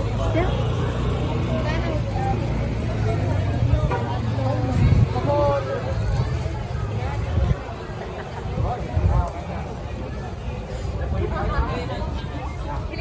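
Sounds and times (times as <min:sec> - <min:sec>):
low rumble of traffic: 0:00.0 - 0:13.0
people talking: 0:00.0 - 0:13.0.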